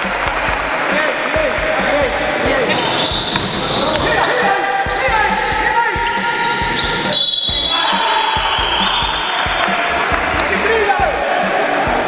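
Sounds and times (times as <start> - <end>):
funky electronic music: 0.0 - 12.0
players' voices: 0.0 - 12.0
basketball bouncing: 2.7 - 10.5.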